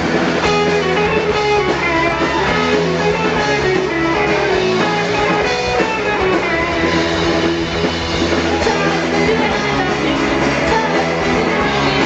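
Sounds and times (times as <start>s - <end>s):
drum kit: 0.0s - 12.0s
electric guitars: 0.0s - 12.0s.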